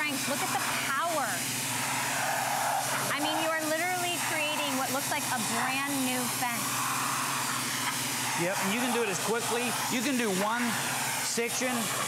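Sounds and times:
motor hum: 0.0 - 12.0
pressure washer spray hissing: 0.0 - 12.0.

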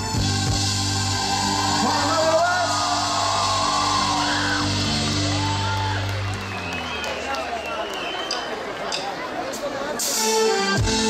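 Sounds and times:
low bass: 0.0 - 7.0
live band music: 0.0 - 11.0.

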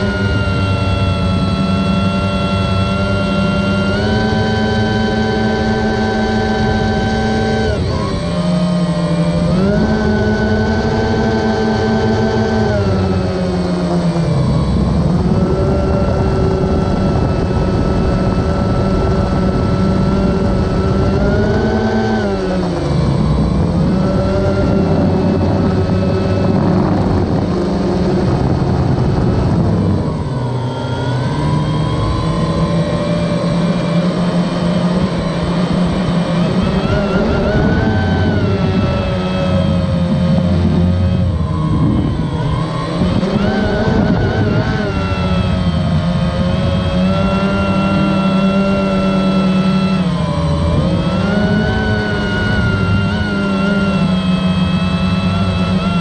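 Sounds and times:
drone propellers buzzing: 0.0 - 56.0.

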